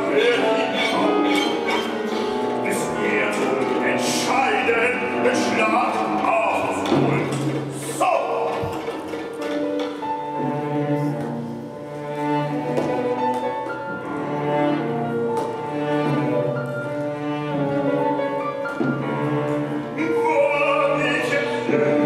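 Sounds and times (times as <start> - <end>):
clarinet: 0.0 - 7.3
piano: 0.0 - 22.0.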